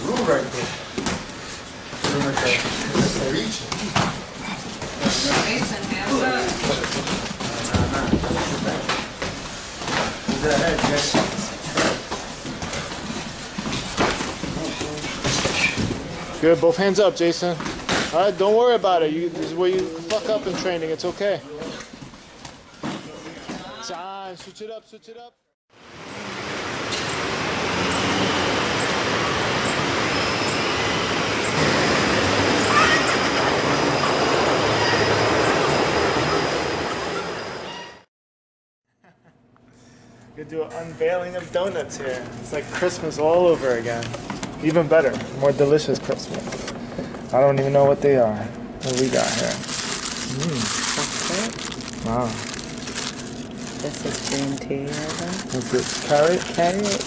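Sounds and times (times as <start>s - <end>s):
voices in a gym: 0.0s - 25.4s, 40.2s - 49.6s, 50.2s - 52.4s
city traffic roar: 25.8s - 37.7s.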